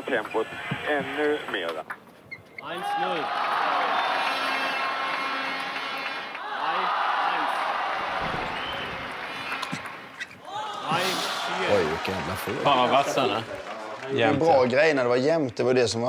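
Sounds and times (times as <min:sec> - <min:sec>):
shouts from crowd: 0:02.6 - 0:05.2, 0:06.4 - 0:09.7
crowd applauding and cheering: 0:02.8 - 0:15.6.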